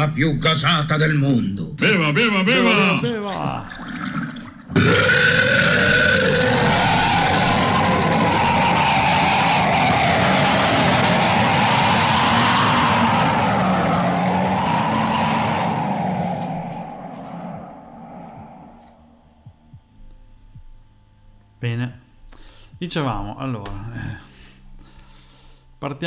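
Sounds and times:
long rasping belch: 0:02.9 - 0:09.6.

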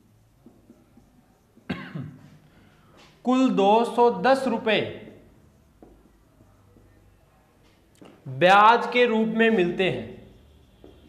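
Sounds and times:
marker writing on whiteboard: 0:00.0 - 0:11.0
man coughing: 0:01.7 - 0:02.3.

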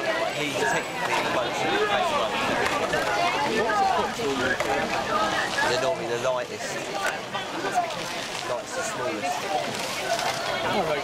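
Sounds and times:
overlapping voices talking: 0:00.0 - 0:11.0.

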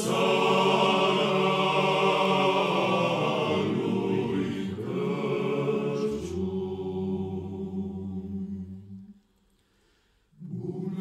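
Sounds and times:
men's choir singing a cappella: 0:00.0 - 0:09.2, 0:10.4 - 0:11.0.

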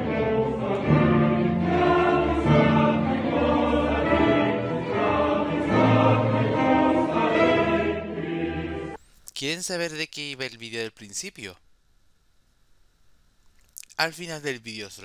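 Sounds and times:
orchestra strings playing chords: 0:00.0 - 0:09.0.

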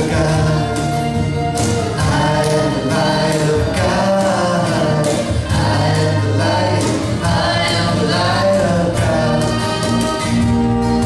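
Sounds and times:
voices singing together: 0:00.0 - 0:10.3
acoustic guitars: 0:00.0 - 0:11.0
hand percussion: 0:00.0 - 0:11.0.

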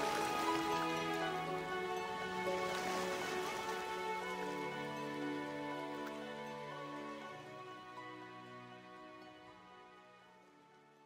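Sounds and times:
quiet epic orchestral music: 0:00.0 - 0:11.0.

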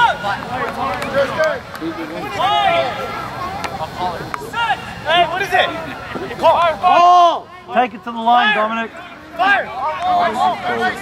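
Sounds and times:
shouted calls: 0:00.0 - 0:03.6, 0:04.4 - 0:11.0
crowd chatter: 0:00.0 - 0:11.0.

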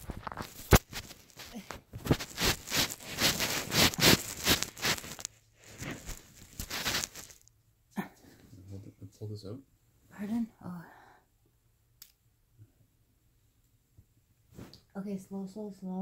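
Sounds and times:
clothing rustling and scuffing: 0:00.0 - 0:07.4.

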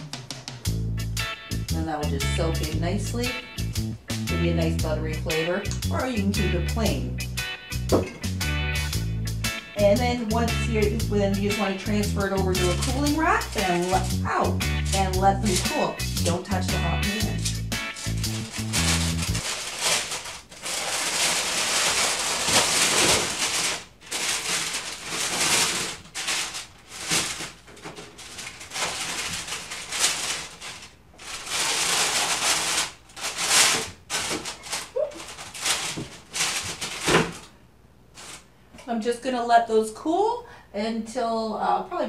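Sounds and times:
baking paper rustling and crinkling: 0:11.4 - 0:38.5.

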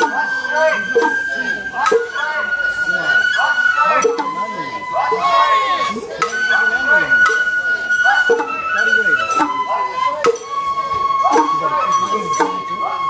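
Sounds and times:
drum strikes: 0:00.0 - 0:02.5, 0:04.0 - 0:05.5, 0:06.1 - 0:12.7
bamboo flutes playing: 0:00.0 - 0:13.0
voices: 0:00.0 - 0:13.0.

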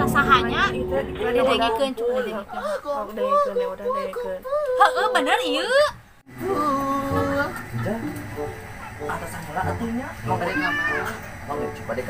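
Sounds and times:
voices speaking: 0:00.0 - 0:12.0
cat meowing: 0:10.4 - 0:11.2.

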